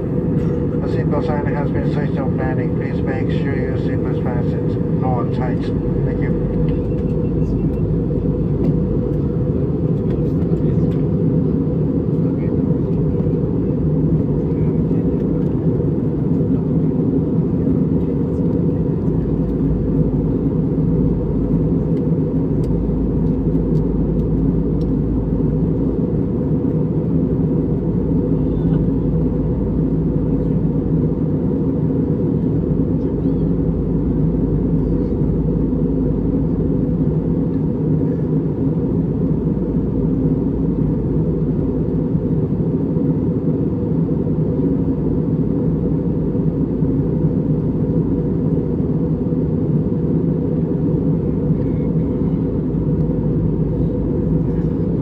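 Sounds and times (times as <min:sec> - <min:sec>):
airliner cabin rumble: 0:00.0 - 0:55.0
low hums: 0:00.0 - 0:55.0.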